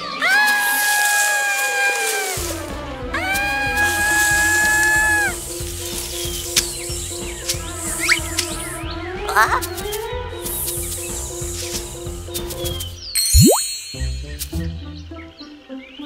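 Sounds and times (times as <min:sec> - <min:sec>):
background music with steady beat: 0:02.4 - 0:15.8
cartoon character ooh vocalizations: 0:09.3 - 0:09.7.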